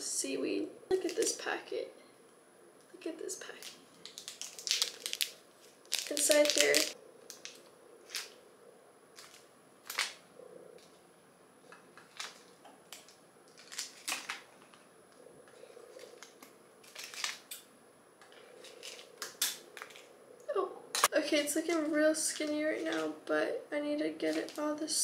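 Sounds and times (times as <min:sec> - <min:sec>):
plastic packets clicking: 0:03.5 - 0:08.4, 0:09.2 - 0:10.2, 0:12.0 - 0:14.8, 0:16.0 - 0:17.7, 0:18.6 - 0:20.1.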